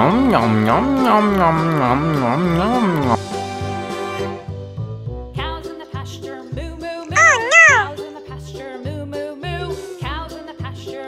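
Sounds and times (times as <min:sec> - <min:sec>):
children's music with low beat: 0:00.0 - 0:03.2, 0:05.4 - 0:08.0.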